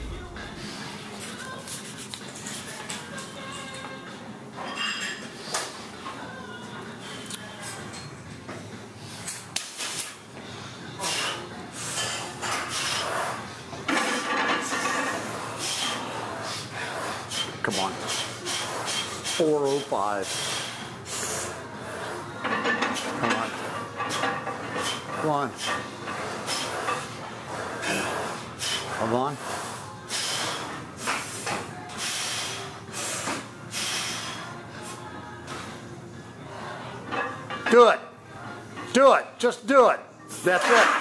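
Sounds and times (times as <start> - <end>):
sharp noisy breaths: 15.2 - 19.4, 20.2 - 22.2, 27.5 - 34.6.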